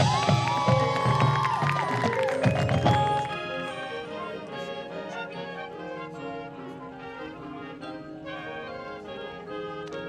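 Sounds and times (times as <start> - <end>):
spectators cheering: 0.0 - 3.6
marching band playing: 0.0 - 10.0.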